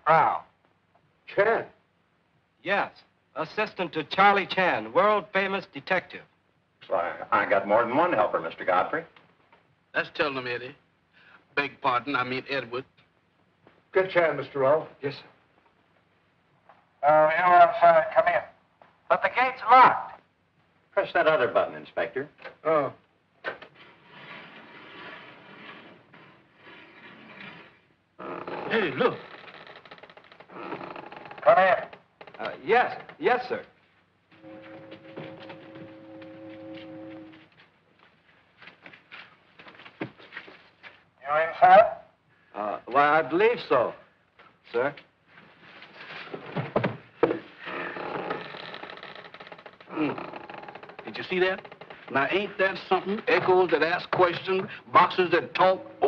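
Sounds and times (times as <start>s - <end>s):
gate mechanism rumbling: 34.4s - 37.4s, 55.2s - 56.0s.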